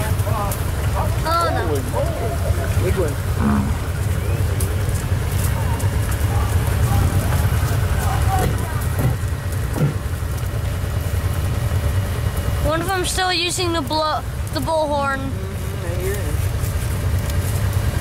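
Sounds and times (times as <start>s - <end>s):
car engine running: 0.0s - 18.0s
faint voices: 0.0s - 18.0s.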